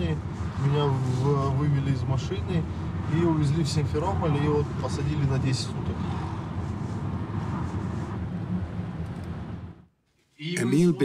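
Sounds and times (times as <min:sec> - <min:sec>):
rumbling outdoor noise: 0:00.0 - 0:10.0.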